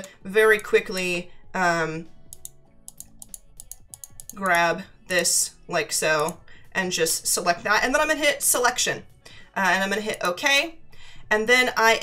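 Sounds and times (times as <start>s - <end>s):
mouse and keyboard clicks: 2.3s - 4.6s.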